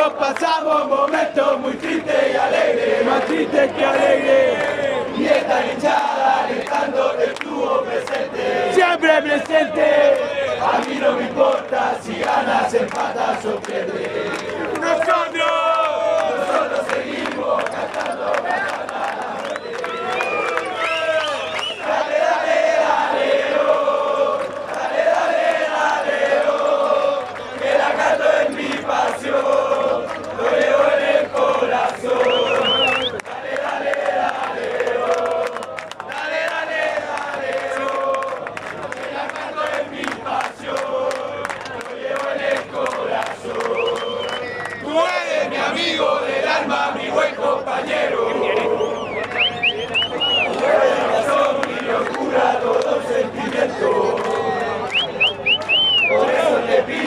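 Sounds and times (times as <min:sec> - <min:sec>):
crowd chanting: 0:00.0 - 0:57.0
high whistles: 0:19.5 - 0:21.9, 0:32.2 - 0:33.2, 0:43.8 - 0:44.8, 0:48.8 - 0:50.6, 0:54.9 - 0:56.2.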